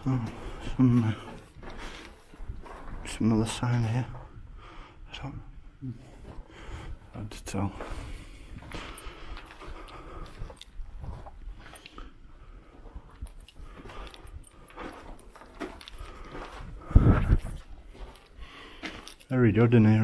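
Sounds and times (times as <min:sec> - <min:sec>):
footsteps crunching on rubble: 0:00.0 - 0:04.4, 0:06.1 - 0:20.0.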